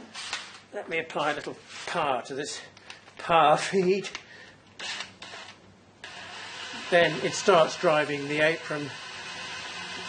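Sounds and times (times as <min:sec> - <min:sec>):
cordless drill running: 0:04.8 - 0:10.0.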